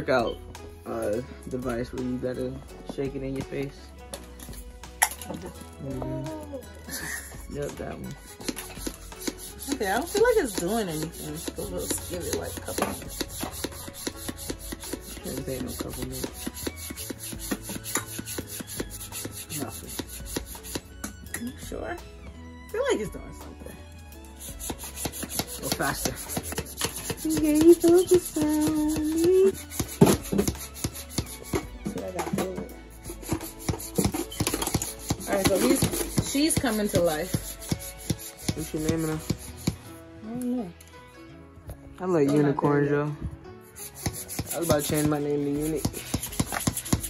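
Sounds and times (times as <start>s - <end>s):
hand pump rasping strokes: 7.6s - 20.9s, 24.3s - 31.8s, 32.9s - 39.9s, 43.7s - 47.0s.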